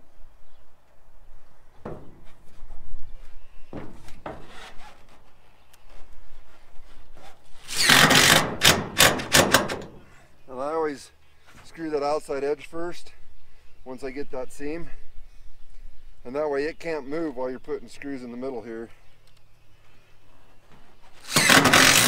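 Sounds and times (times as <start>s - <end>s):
metal sheets scraping: 3.7s - 5.4s
loud rasping crackling burst: 7.6s - 9.9s, 21.2s - 22.0s.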